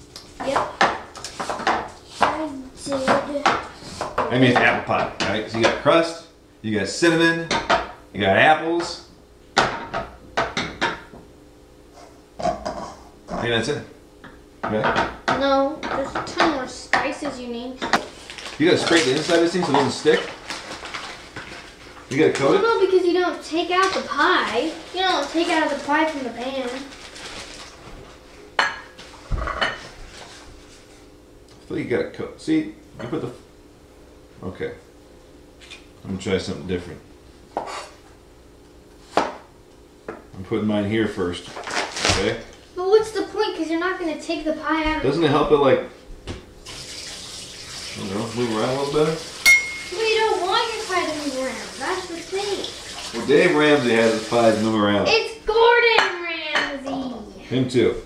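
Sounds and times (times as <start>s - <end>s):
kitchenware clatter: 14.6s - 17.1s, 28.6s - 29.9s, 49.4s - 50.2s
knocks and clinks in steel bowl: 49.5s - 50.0s.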